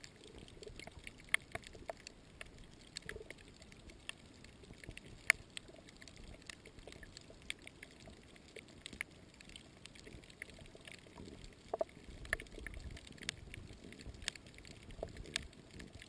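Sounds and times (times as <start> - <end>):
sharp underwater clicks and crackles: 0.0 - 16.0.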